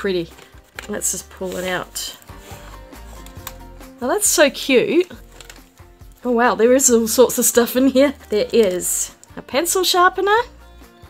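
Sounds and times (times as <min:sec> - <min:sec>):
quiet background music: 0:00.0 - 0:11.0
fabric rubbing against cardboard: 0:01.1 - 0:03.3.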